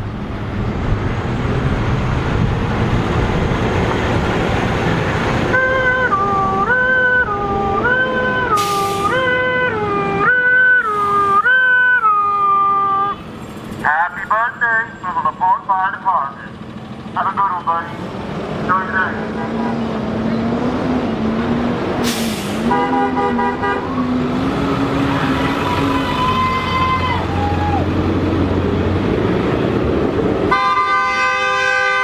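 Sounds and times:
two-tone fire truck siren: 0:05.4 - 0:13.2, 0:30.5 - 0:32.0.

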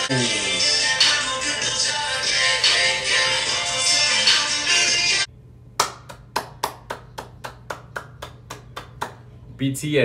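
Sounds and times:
music: 0:00.0 - 0:05.3
person clapping hands: 0:05.8 - 0:09.3.

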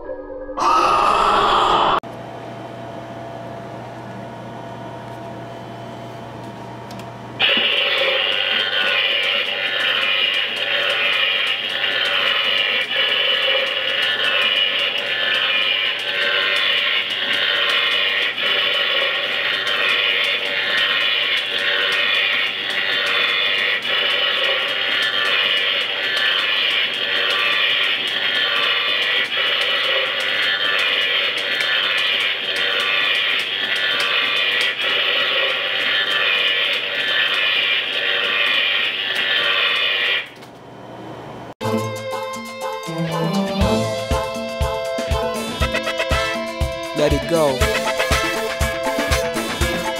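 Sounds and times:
electrical crackling and buzzing: 0:07.4 - 0:40.3.

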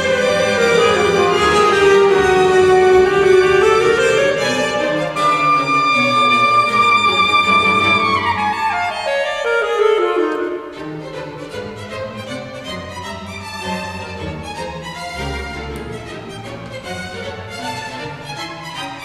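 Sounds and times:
saxophone: 0:00.0 - 0:10.9
bowed strings: 0:00.0 - 0:19.0.

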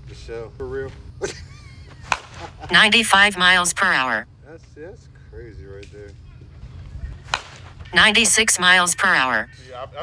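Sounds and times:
bat striking ball: 0:02.1 - 0:02.5, 0:07.2 - 0:08.0.

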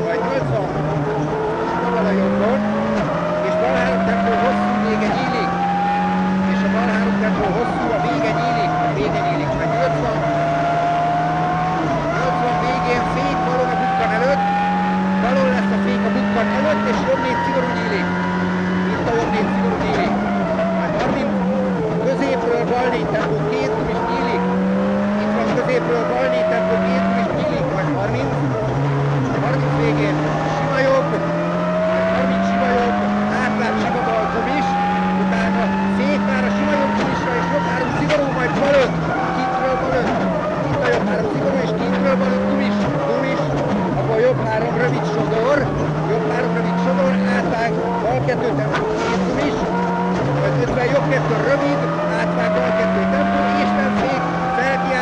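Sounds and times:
rally car engine revving: 0:00.0 - 0:55.0
tyre and road noise: 0:00.0 - 0:55.0.

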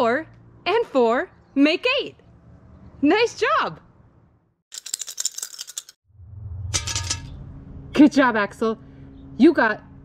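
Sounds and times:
low hum: 0:06.1 - 0:10.0.

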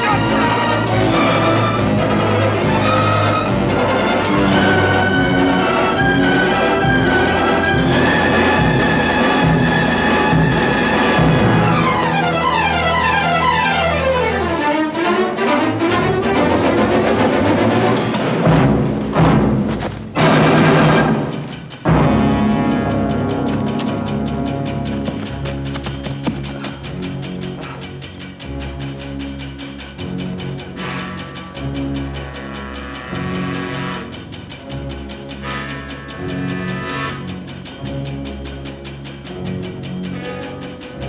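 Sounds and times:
held brass notes: 0:00.0 - 0:41.0
string notes: 0:00.0 - 0:41.0
timpani: 0:00.0 - 0:41.0
loud orchestral crashes: 0:15.4 - 0:24.7.

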